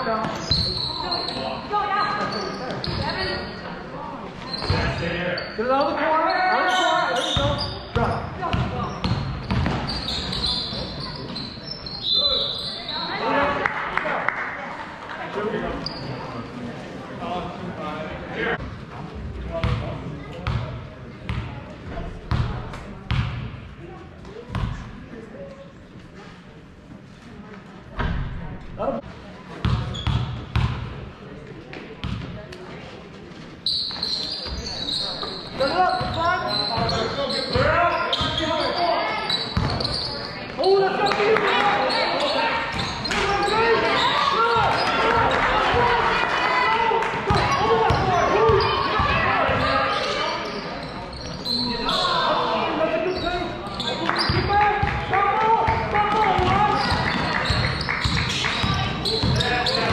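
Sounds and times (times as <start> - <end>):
crowd shouting: 43.4 - 49.8.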